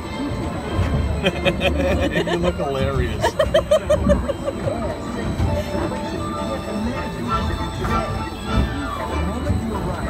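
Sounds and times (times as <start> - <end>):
faint ride soundtrack music: 0.0 - 10.0
ride vehicle rumbling on track: 0.0 - 10.0.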